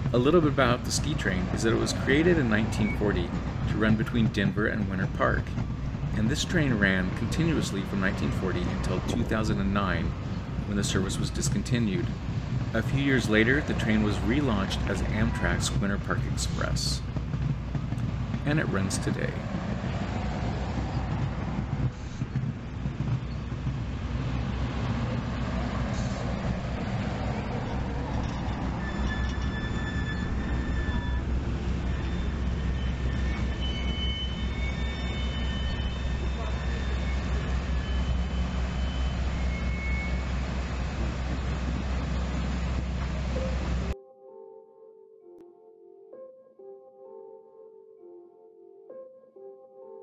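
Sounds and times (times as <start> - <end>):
train wheels rumbling on track: 0.0 - 44.0
high wheel squeals: 0.6 - 4.1, 12.8 - 16.7, 27.1 - 43.9
soft music: 43.2 - 50.0.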